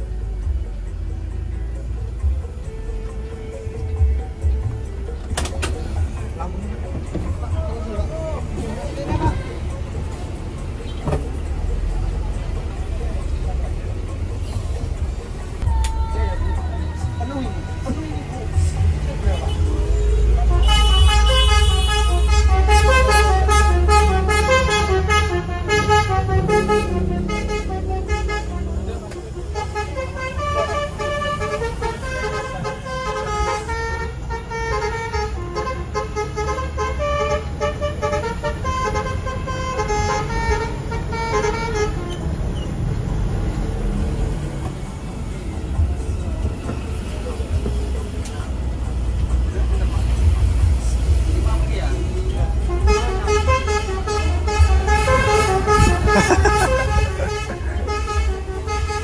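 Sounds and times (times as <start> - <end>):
diesel engine low rumble: 0.0 - 59.0
multi-tone air horn melody: 19.2 - 42.5, 52.6 - 59.0.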